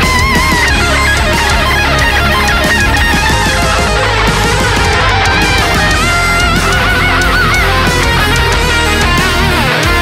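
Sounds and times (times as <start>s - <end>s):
distorted electric guitar lead: 0.0s - 10.0s
heavy rock band: 0.0s - 10.0s.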